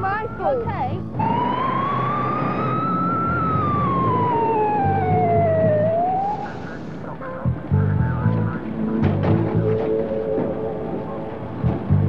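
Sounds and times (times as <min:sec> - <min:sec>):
fire engine siren wailing: 0:00.4 - 0:07.4.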